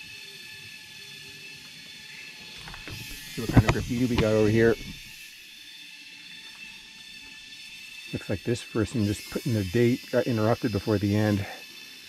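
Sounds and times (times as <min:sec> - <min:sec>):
forest insects droning: 0:00.0 - 0:12.0.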